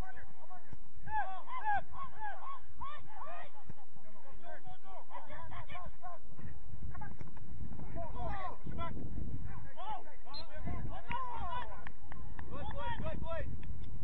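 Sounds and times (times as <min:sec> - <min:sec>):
outdoor background noise: 0:00.0 - 0:14.0.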